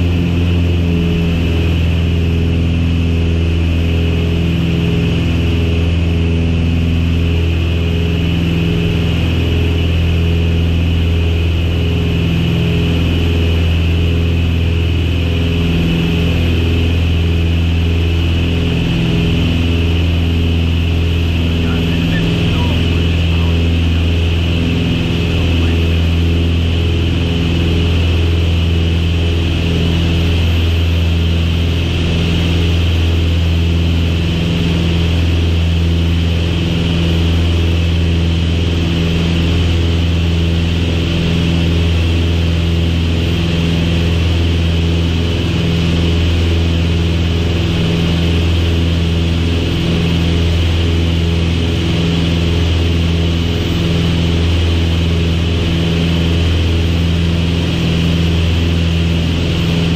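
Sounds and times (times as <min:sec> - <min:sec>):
propeller plane engines droning: 0:00.0 - 0:59.9.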